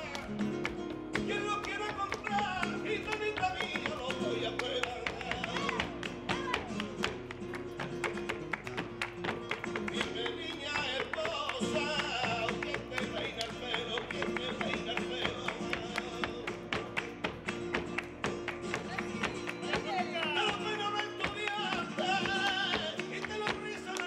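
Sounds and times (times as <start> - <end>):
man singing: 0.0 - 8.3, 9.5 - 17.5, 18.9 - 24.0
guitar: 0.0 - 24.0
rhythmic hand-clapping: 0.0 - 24.0.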